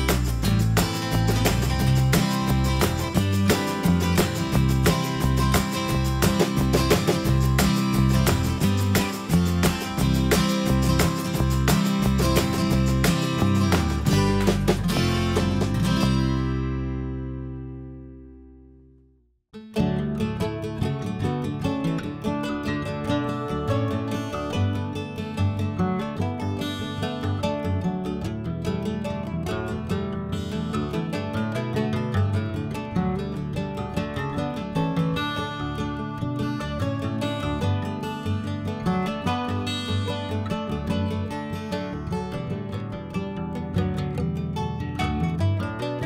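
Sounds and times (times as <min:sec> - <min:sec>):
strummed acoustic guitar music: 0:00.0 - 0:18.8, 0:19.5 - 0:46.0.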